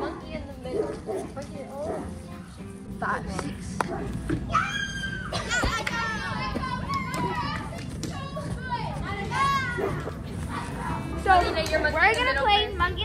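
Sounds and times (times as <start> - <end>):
girls shouting and squealing: 4.4 - 11.3.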